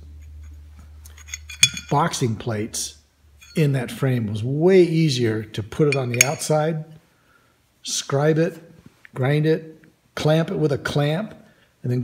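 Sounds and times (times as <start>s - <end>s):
steady low hum: 0.0s - 7.8s
steel plates knocking together: 1.2s - 2.0s, 5.9s - 6.5s.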